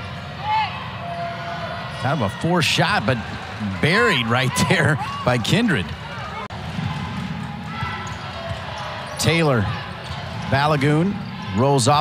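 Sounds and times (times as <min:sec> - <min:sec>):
low crowd rumble: 0:03.0 - 0:11.6
sneakers squeaking on court: 0:05.9 - 0:11.6.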